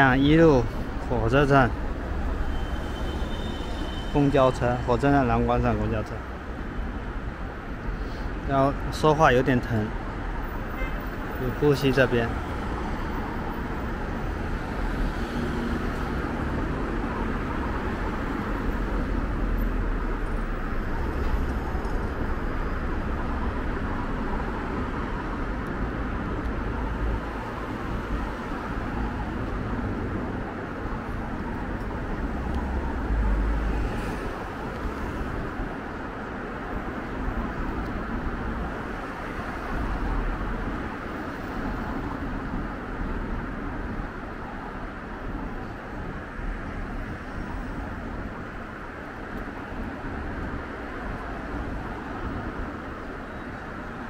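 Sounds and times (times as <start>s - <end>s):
road traffic noise: 0.0s - 54.0s.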